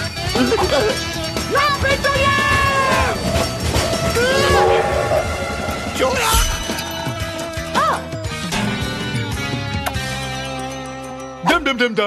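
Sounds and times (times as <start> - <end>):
rhythmic rail rumble: 0.0 - 7.8
cartoon train horn hooting: 4.2 - 5.8.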